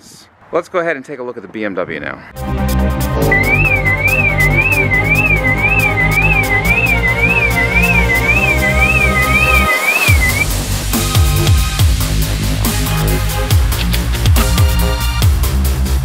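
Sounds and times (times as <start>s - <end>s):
car alarm siren warbling: 3.2s - 10.5s
electronic dance music: 3.2s - 15.6s.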